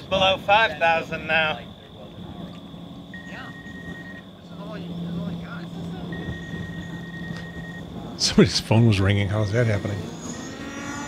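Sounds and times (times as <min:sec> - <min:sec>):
low steady hum: 0:00.0 - 0:11.0
phone ringing high beeps: 0:06.1 - 0:07.9.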